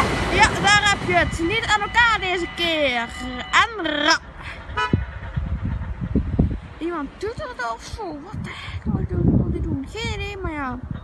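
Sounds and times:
train horn toot: 0.0 - 5.1
train rumbling: 0.0 - 11.0.

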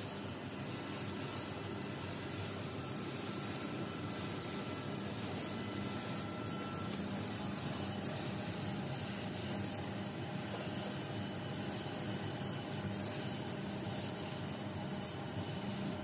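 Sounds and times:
spray gun hissing: 0.0 - 16.0.

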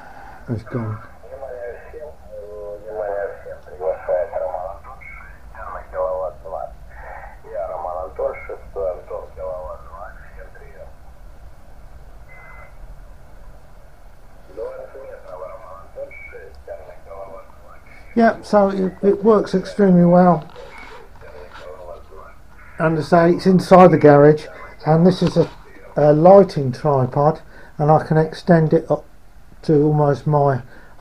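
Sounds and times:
steady low hum: 0.0 - 31.0
thin radio voice from loudspeaker: 0.5 - 10.9, 14.5 - 23.2.

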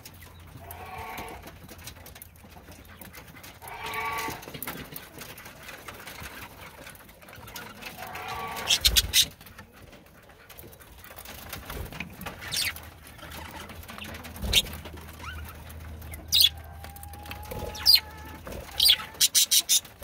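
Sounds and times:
birds rustling and pecking: 0.0 - 20.0
budgerigar drawn-out calls: 16.3 - 16.5, 17.4 - 19.8.

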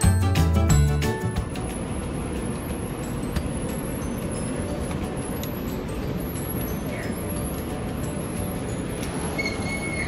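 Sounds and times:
kitchen fans humming: 0.0 - 10.0.

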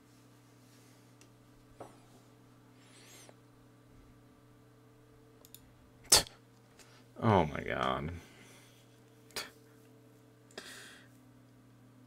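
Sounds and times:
computer mouse clicks: 5.4 - 5.6.

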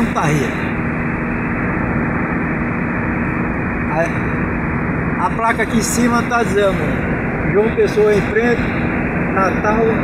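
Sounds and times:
low hum: 0.0 - 10.0
road noise in car cabin: 0.0 - 10.0.

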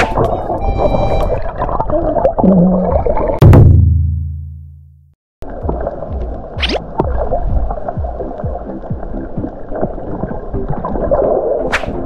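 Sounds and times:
underwater bubbling: 0.1 - 3.4, 5.4 - 12.0
underwater rush of water: 5.4 - 12.0.

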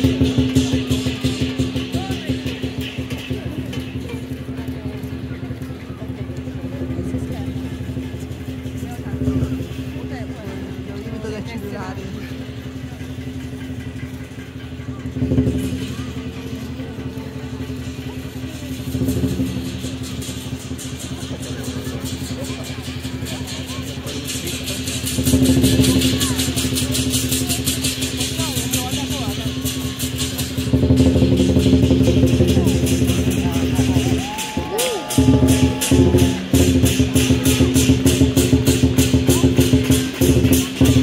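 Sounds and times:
cymbal beats: 0.0 - 41.0
fast drum beats: 0.0 - 41.0.

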